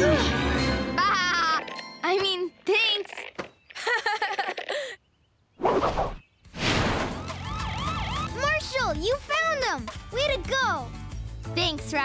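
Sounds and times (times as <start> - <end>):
whoosh: 5.6 - 7.2
warbling siren-like tone: 7.1 - 8.4
bouncy cartoon melody: 7.2 - 10.9.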